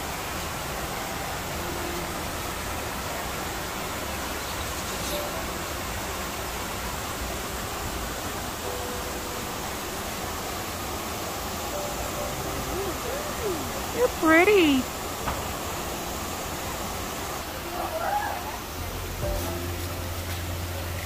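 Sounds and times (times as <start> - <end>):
running water rushing: 0.0 - 21.0.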